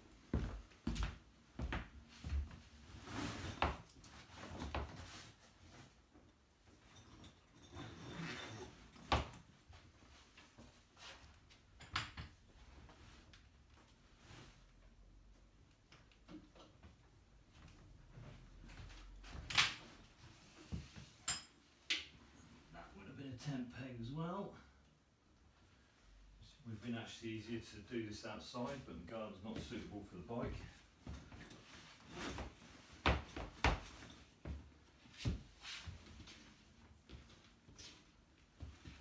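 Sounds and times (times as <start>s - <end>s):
canvas fabric rustling: 1.6s - 6.1s, 30.7s - 39.0s.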